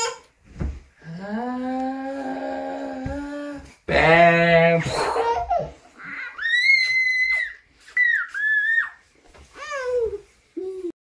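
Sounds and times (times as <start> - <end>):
toddler squealing with laughter: 5.1 - 9.0.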